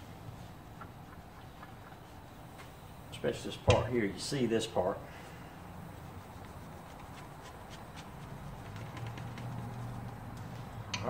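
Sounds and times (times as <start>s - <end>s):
steady low hum: 0.0s - 11.0s
hands rubbing metal casing: 0.4s - 2.9s, 5.6s - 11.0s.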